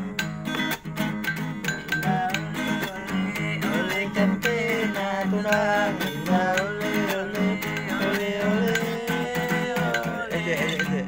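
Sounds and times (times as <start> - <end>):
acoustic guitar strumming: 0.0 - 11.0
man's voice: 2.0 - 11.0.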